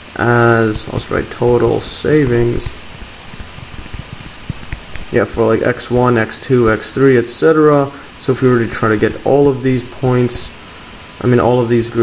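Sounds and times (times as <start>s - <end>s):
microphone hiss: 0.0s - 12.0s
stylus tapping and scratching: 0.6s - 6.8s.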